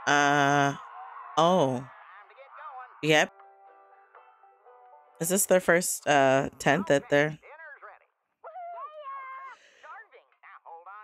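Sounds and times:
animated cartoon speech: 0:05.4 - 0:07.8
high-pitched excited yell: 0:08.5 - 0:09.6.

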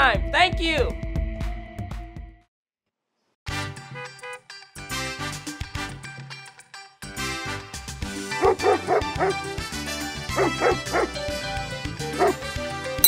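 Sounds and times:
background music: 0:00.0 - 0:02.4, 0:03.5 - 0:13.0
dog barking: 0:08.4 - 0:09.5, 0:10.3 - 0:11.2, 0:12.1 - 0:12.5.

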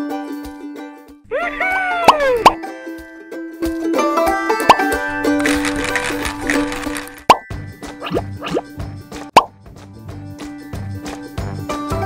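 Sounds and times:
sliding voice-like call: 0:01.3 - 0:02.6
upward bloop pops: 0:01.9 - 0:02.6, 0:07.3 - 0:08.7.

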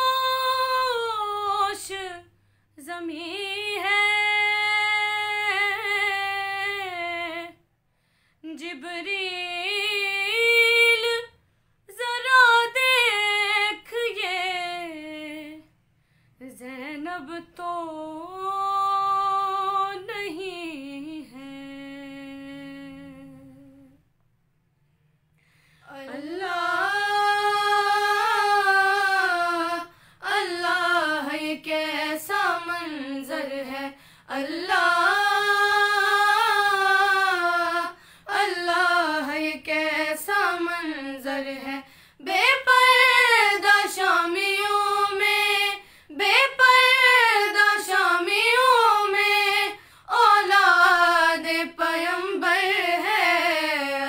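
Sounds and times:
woman singing unaccompanied: 0:00.0 - 0:07.6, 0:08.4 - 0:15.6, 0:16.4 - 0:24.0, 0:25.9 - 0:54.0.

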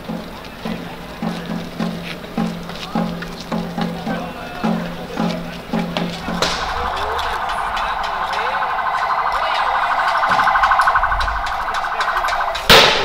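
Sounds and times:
pulsing electronic siren: 0:05.1 - 0:13.0
loud sharp bang: 0:06.2 - 0:13.0.

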